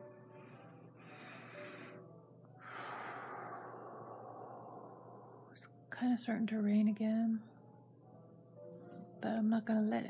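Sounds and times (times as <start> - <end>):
woman breathing in: 0.2 - 5.6.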